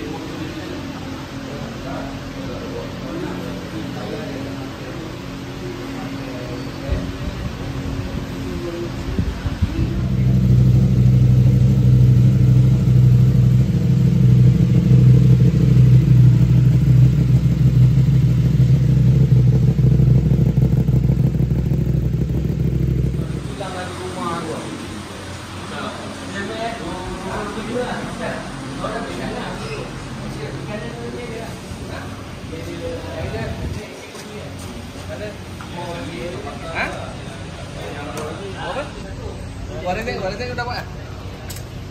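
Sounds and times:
motorcycle engine idling: 2.1s - 24.6s.

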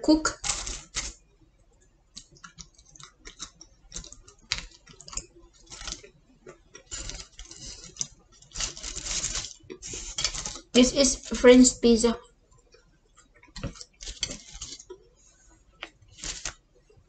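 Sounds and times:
foil tray rustling: 0.3s - 1.2s, 3.9s - 6.1s, 6.7s - 11.8s, 13.6s - 15.0s, 16.1s - 16.6s
mouth clicks chewing pizza: 2.1s - 8.1s.

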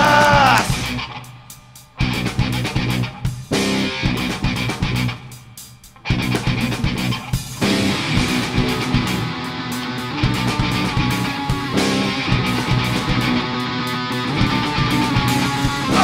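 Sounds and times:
electric bass: 0.0s - 1.4s, 2.0s - 5.3s, 6.0s - 16.0s
drum and cymbal hits: 0.0s - 13.5s
distorted electric guitars: 0.0s - 16.0s.

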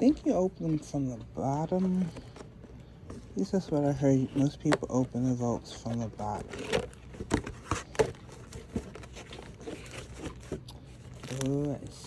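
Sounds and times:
packaging rustling and crinkling: 0.0s - 12.0s.

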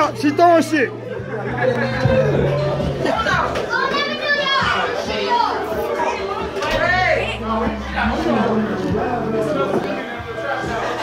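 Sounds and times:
background music: 0.0s - 11.0s
people talking and calling out: 0.0s - 11.0s.

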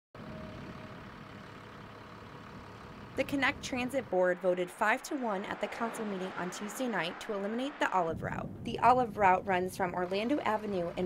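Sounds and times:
bus engine idling: 0.2s - 8.1s, 9.4s - 11.0s.

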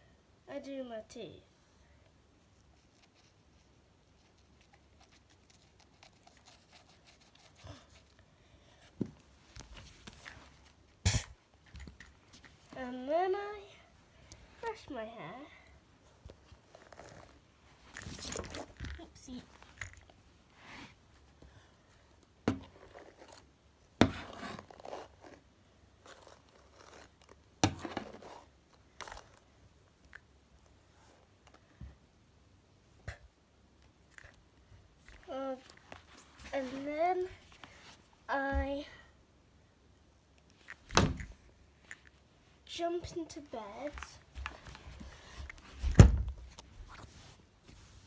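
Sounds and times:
toothbrush scratching plastic: 4.1s - 8.2s
hair brushing rustling and scraping: 46.5s - 48.0s.

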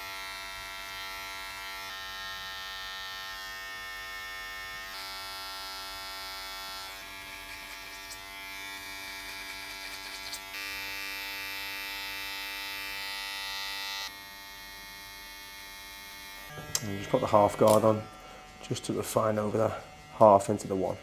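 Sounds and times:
electric hair clipper buzzing: 0.0s - 21.0s.

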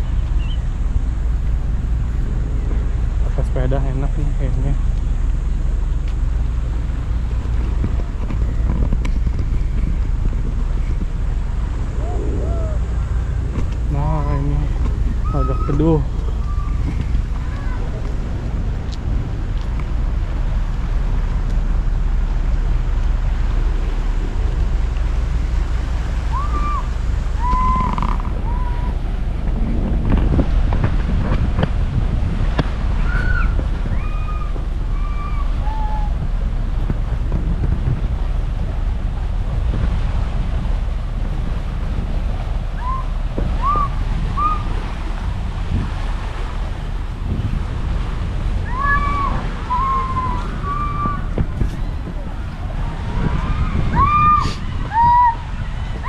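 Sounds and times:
waves washing against seawall: 0.0s - 56.0s
wind rumbling on microphone: 0.0s - 56.0s.

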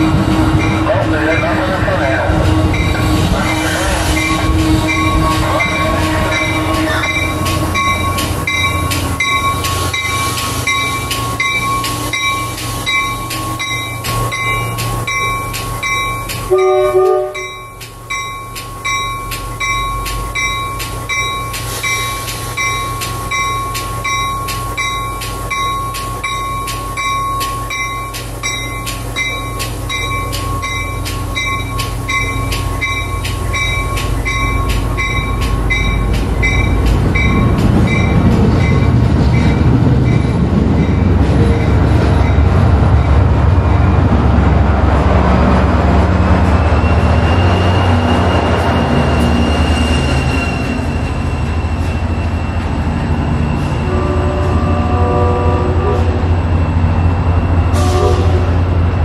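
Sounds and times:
train horn toot: 0.0s - 7.8s, 16.5s - 17.7s, 53.8s - 56.4s, 57.7s - 58.7s
train rumbling: 0.0s - 59.0s
bell ringing: 4.2s - 38.9s.

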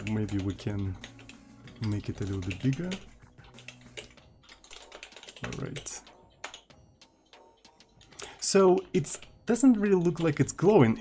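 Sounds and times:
computer keyboard typing: 0.0s - 11.0s.

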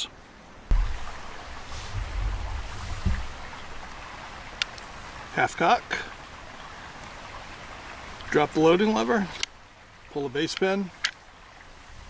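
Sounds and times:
wind buffeting microphone: 0.7s - 3.9s.

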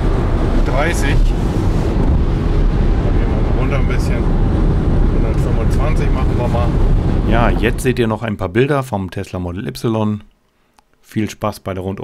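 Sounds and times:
car cabin road and wind rumble: 0.0s - 8.2s.

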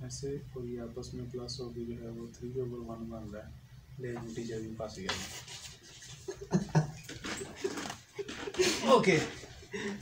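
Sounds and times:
men laughing: 6.1s - 10.0s.

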